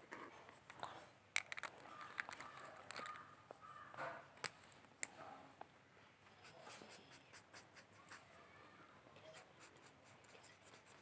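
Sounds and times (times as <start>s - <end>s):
pen scratching on paper: 9.2s - 11.0s.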